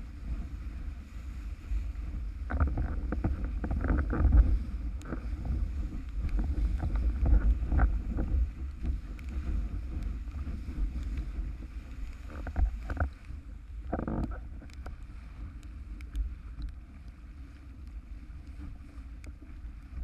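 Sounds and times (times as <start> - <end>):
wind rumble on microphone: 0.0 - 20.0.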